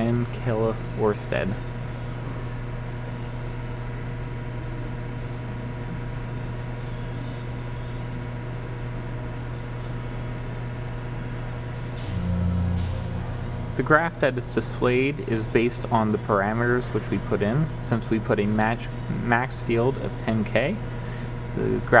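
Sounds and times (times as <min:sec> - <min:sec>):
low machine hum: 0:00.0 - 0:22.0.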